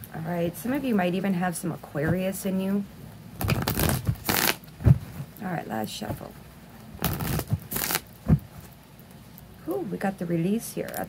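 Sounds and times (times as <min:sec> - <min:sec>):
cards riffle-shuffled by hand: 0:03.4 - 0:04.6, 0:07.0 - 0:08.4.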